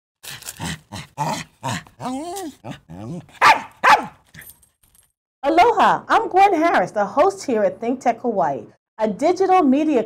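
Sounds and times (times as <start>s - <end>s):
puppy whining: 1.2s - 4.0s
puppy yapping: 1.2s - 4.2s.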